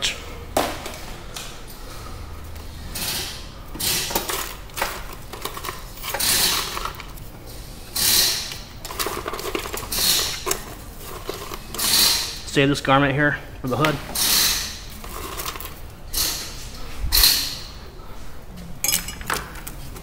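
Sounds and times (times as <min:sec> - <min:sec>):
plastic wiring rustling and clattering: 0:02.7 - 0:12.6, 0:13.7 - 0:17.7.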